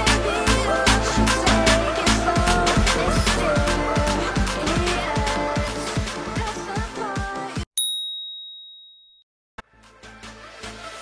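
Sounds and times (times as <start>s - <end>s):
music: 0.0s - 7.7s, 9.6s - 11.0s
high-pitched timer ding: 7.8s - 9.2s.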